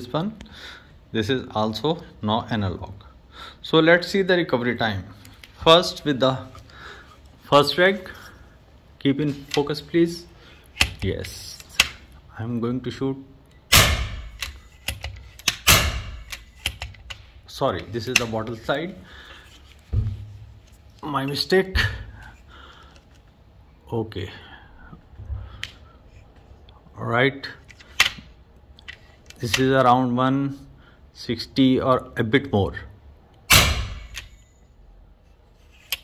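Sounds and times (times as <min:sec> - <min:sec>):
air rifle shot: 0:13.7 - 0:14.4, 0:15.6 - 0:16.3, 0:33.5 - 0:34.2.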